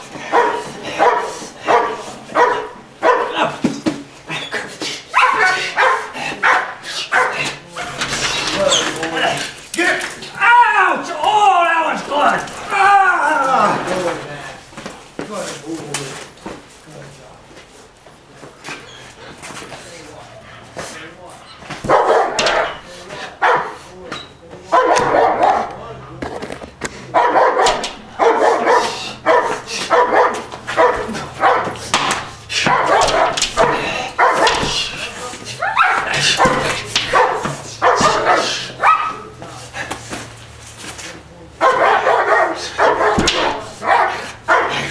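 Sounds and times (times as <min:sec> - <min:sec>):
dog barking aggressively: 0:00.0 - 0:03.6, 0:05.1 - 0:08.6, 0:21.7 - 0:23.9, 0:24.6 - 0:25.8, 0:27.1 - 0:39.4, 0:41.6 - 0:44.9.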